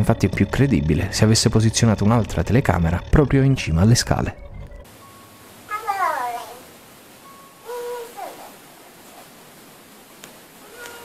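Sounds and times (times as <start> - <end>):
young child calling: 5.7 - 6.7, 7.6 - 8.6, 10.6 - 11.0.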